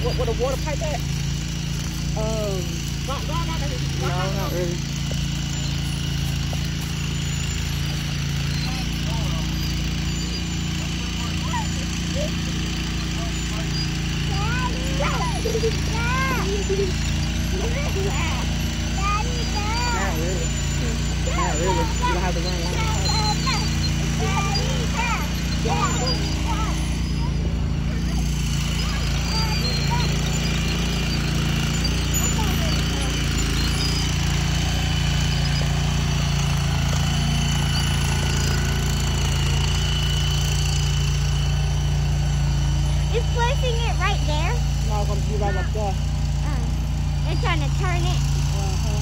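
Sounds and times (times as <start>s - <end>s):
small engine droning: 0.0s - 49.0s
voices: 0.0s - 49.0s.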